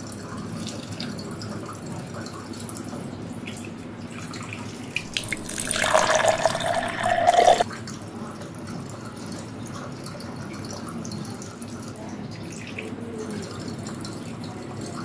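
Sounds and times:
tap running into washbasin: 3.4s - 7.6s.

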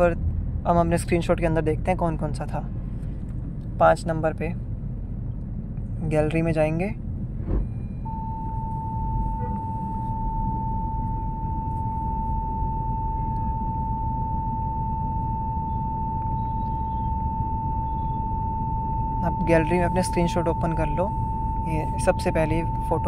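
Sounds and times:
low background rumble: 0.0s - 23.0s
steady tone: 6.9s - 23.0s.

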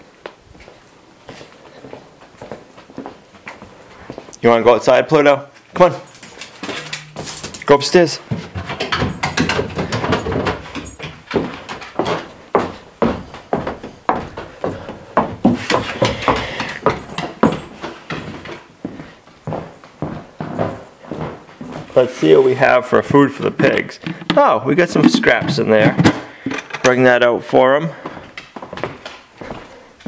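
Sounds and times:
footsteps on wooden stairs: 6.2s - 26.5s, 27.4s - 29.8s.

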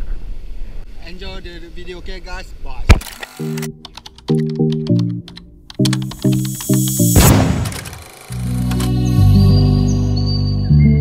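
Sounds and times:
rapid sharp clicks: 3.0s - 9.0s
electronic chord stabs: 3.4s - 9.4s.

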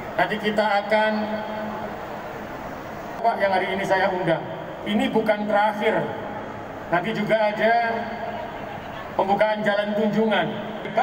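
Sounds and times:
large hall background noise: 0.0s - 11.0s
low even hum: 0.0s - 11.0s.

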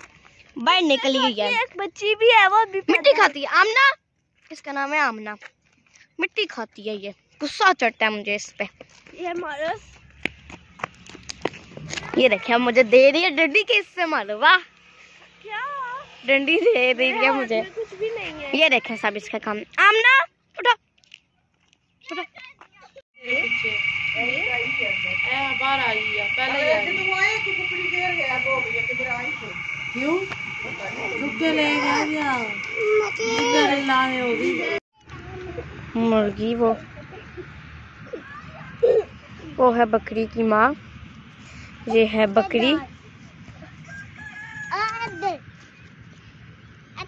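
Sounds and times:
gliding calls: 23.2s - 34.8s
rooster crowing: 23.3s - 25.2s, 26.0s - 34.8s, 43.7s - 45.4s
chorus of calling animals: 25.9s - 35.9s.

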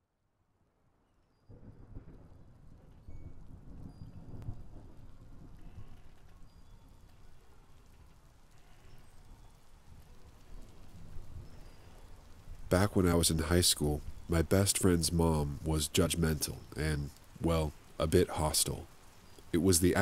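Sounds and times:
rain: 0.2s - 20.0s
low rumbling thunder: 1.5s - 7.0s.

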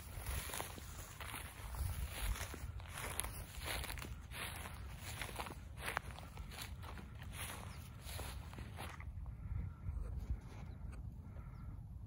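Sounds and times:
footsteps through dry grass: 0.0s - 10.6s.

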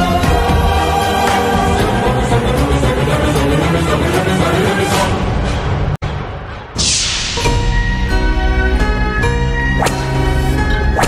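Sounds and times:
dramatic background score: 0.0s - 11.0s.

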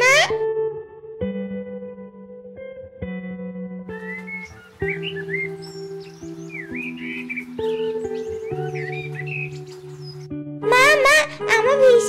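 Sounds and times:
soft instrumental music: 0.0s - 12.0s
birds chirping: 3.9s - 11.0s.

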